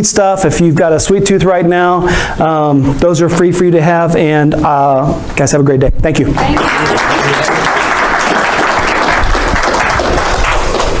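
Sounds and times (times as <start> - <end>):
audience applauding: 6.4 - 11.0.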